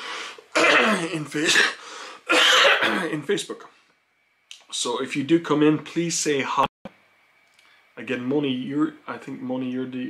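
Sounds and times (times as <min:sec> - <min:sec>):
man clearing his throat: 0:00.5 - 0:03.2.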